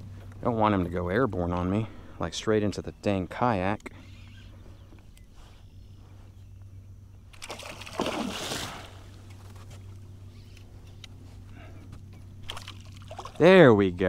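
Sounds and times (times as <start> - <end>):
low steady hum: 0.0 - 14.0
fish splashing in water: 7.4 - 9.2, 12.4 - 13.4.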